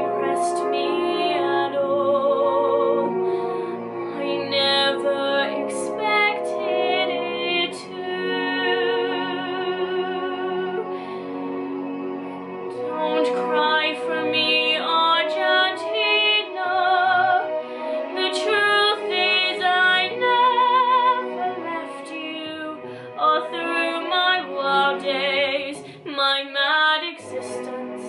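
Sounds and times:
soft instrumental accompaniment: 0:00.0 - 0:28.0
young woman singing pop ballad: 0:04.2 - 0:09.2, 0:18.2 - 0:28.0.

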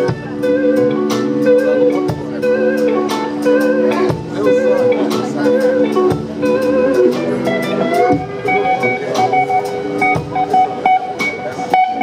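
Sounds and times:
electric guitar vibrato lick: 0:00.0 - 0:12.0
live blues band playing: 0:00.0 - 0:12.0
steady drum beat: 0:00.0 - 0:12.0.

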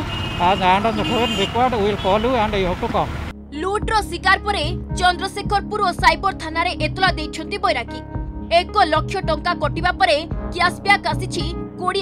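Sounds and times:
road traffic passing: 0:00.0 - 0:03.4
man speaking into microphones: 0:00.4 - 0:03.3.

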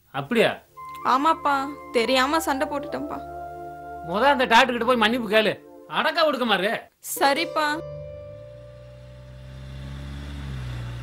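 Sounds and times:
car driving past: 0:08.1 - 0:11.0.

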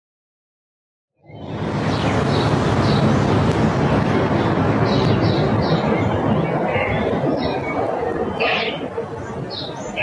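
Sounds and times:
birds chirping: 0:01.2 - 0:03.3, 0:04.2 - 0:10.0
street noise hum: 0:01.2 - 0:10.0.

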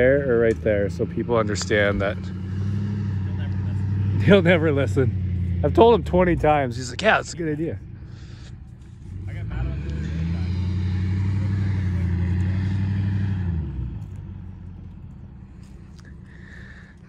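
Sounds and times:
vehicle engine under load: 0:00.0 - 0:17.0.

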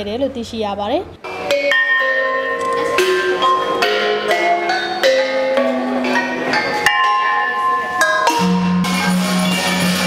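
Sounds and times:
bossed gongs being struck: 0:01.2 - 0:10.0.

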